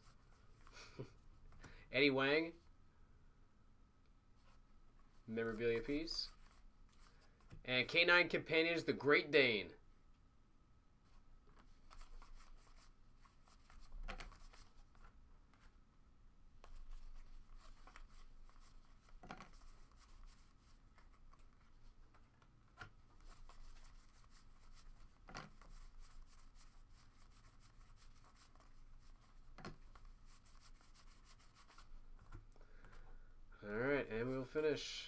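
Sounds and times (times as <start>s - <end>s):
trading cards rustling and sliding: 4.4s - 7.6s, 11.1s - 15.7s, 16.6s - 33.0s.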